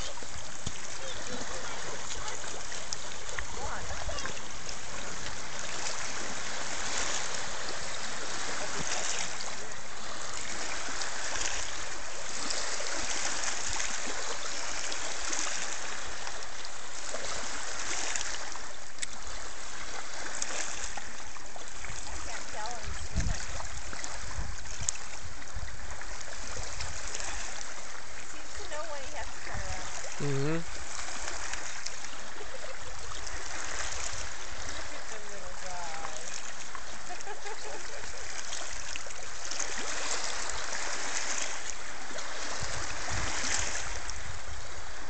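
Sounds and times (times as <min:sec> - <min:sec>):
waves lapping on rocky shore: 0:00.0 - 0:45.0.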